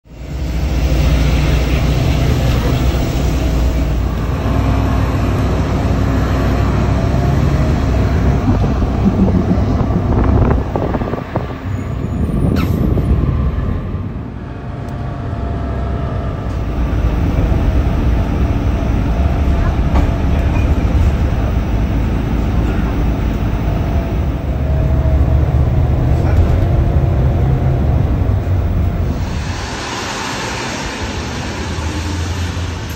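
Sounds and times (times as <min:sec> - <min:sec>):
low engine rumble: 0:00.0 - 0:32.9
background voices: 0:07.3 - 0:11.7.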